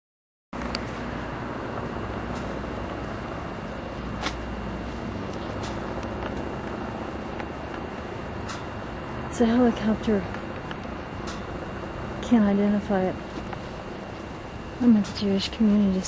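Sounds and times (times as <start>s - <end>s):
helicopter drone overhead: 0.6s - 16.0s.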